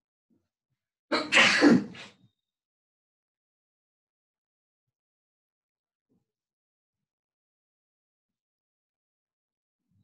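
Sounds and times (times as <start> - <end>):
person sneezing: 1.1 - 2.2.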